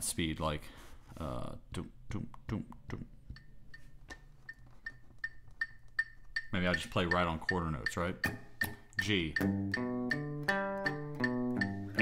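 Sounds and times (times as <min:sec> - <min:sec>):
metronome clicking: 0:03.3 - 0:12.0.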